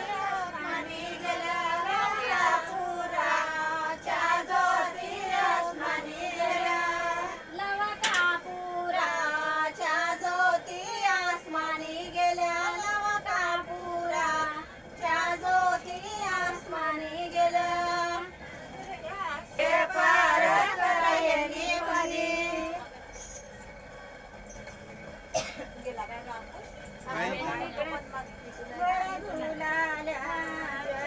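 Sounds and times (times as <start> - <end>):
women singing together: 0.0 - 23.0, 27.1 - 31.0.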